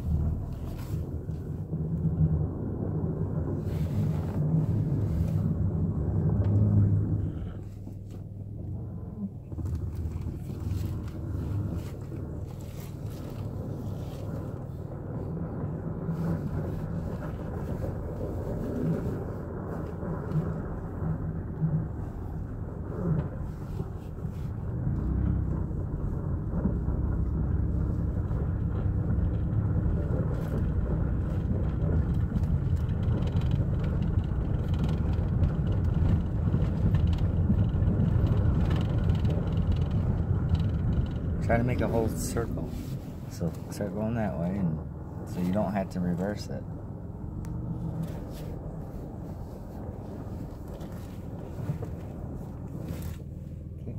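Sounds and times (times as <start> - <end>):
car engine and road rumble: 0.0 - 53.9.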